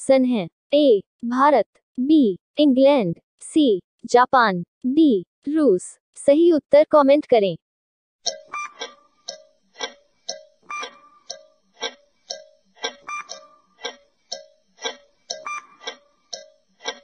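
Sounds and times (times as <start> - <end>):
clock ticking: 8.2 - 17.0.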